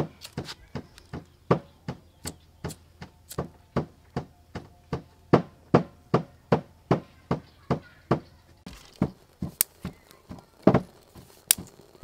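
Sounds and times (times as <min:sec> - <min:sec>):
hard tool knocking on hard surface: 0:09.0 - 0:11.3.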